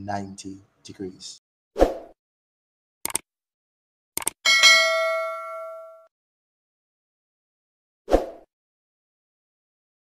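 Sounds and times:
quick clicks: 3.0 - 3.3, 4.2 - 4.4
bright bell ding: 4.5 - 6.1.

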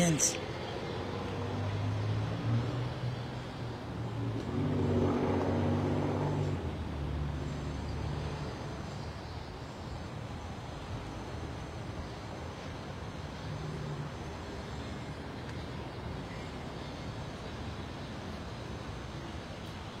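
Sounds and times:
vehicle passing: 0.0 - 9.1
traffic engine rumble: 0.0 - 20.0.

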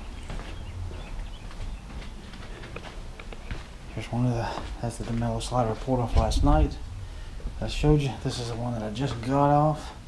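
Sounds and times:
footsteps on concrete: 0.0 - 6.8, 7.4 - 9.6.

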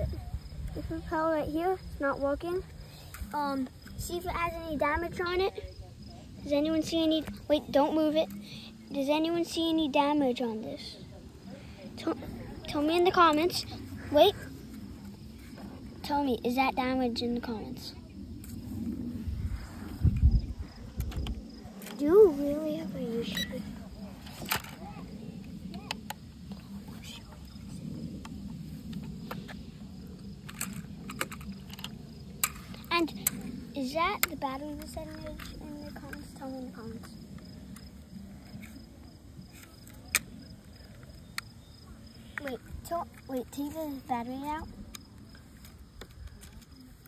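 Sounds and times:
murmur of background voices: 0.0 - 31.9
faint low rumble: 0.0 - 39.6.

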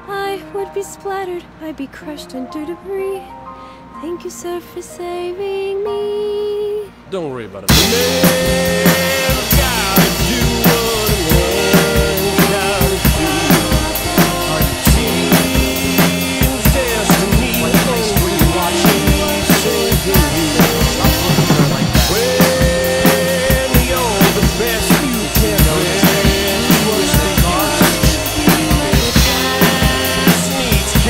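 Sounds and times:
instrumental backing music: 0.0 - 31.0
drum kit playing a beat: 7.7 - 31.0.

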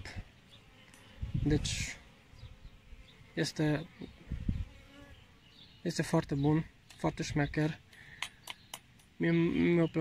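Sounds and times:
bee flying past: 0.0 - 5.6
honeybees buzzing: 0.0 - 10.0.

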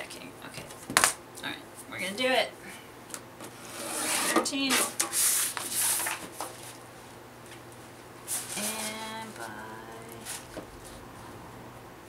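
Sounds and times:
paper sliding and rustling: 3.5 - 6.8
person humming: 8.5 - 10.4.

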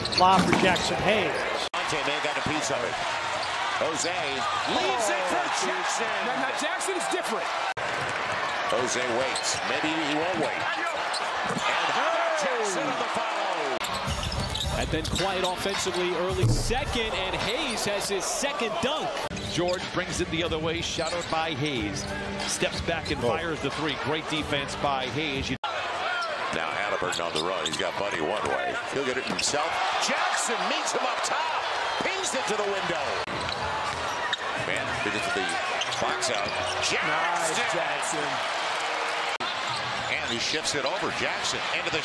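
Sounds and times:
arena crowd noise: 0.0 - 42.0.

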